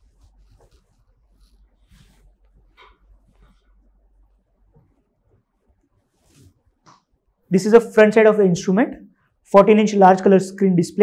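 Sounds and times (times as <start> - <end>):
faint soft noises: 0.0 - 7.5.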